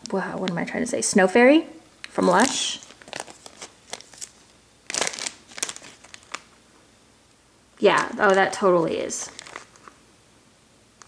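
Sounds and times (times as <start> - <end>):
plastic bag crinkling: 2.0 - 6.6, 7.8 - 10.0.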